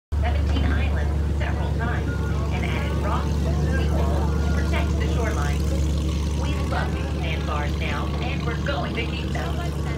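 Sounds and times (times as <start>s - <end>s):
boat engine droning: 0.1s - 9.9s
people talking: 0.2s - 9.9s.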